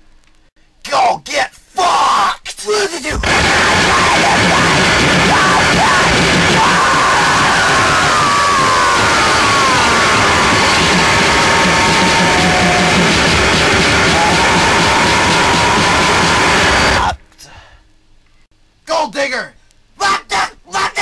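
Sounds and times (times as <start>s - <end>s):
harsh noise music: 3.2s - 17.2s
whining pitch: 3.2s - 17.2s.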